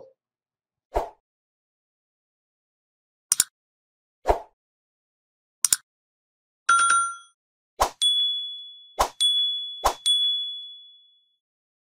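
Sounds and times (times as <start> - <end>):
bright sound-effect dings: 8.0 - 11.4.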